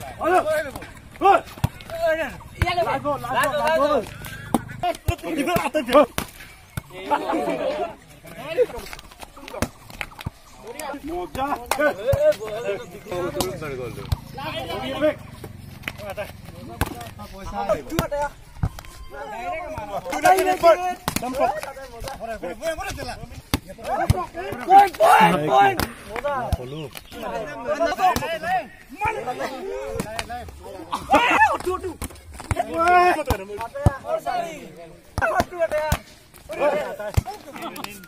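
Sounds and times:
men shouting: 0.0s - 6.2s, 6.9s - 9.5s, 10.8s - 23.2s, 23.8s - 35.9s, 36.5s - 37.8s
hands smacking volleyball: 0.2s - 6.9s, 8.2s - 14.3s, 15.4s - 19.0s, 19.7s - 27.4s, 29.9s - 34.3s, 35.1s - 38.0s.

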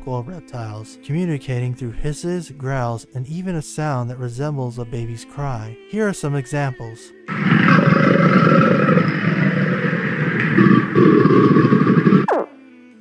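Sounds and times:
soft background music: 0.0s - 7.3s, 12.3s - 13.0s
crocodile growling: 7.3s - 12.6s.

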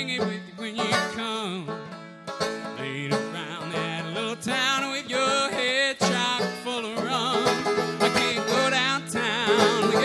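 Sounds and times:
banjo picking: 0.0s - 10.0s.

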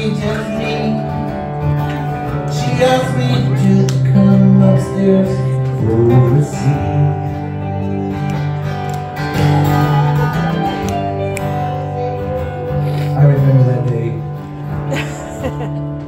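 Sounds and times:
acoustic guitars playing: 0.0s - 16.0s.

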